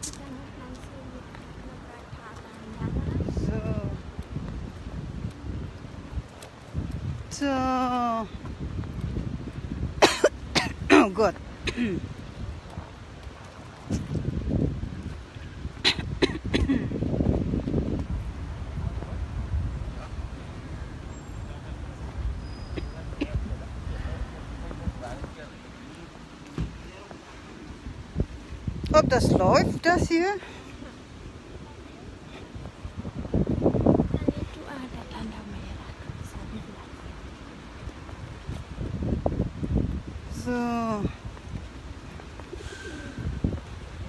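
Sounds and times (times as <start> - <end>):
low city rumble: 0.0 - 44.0.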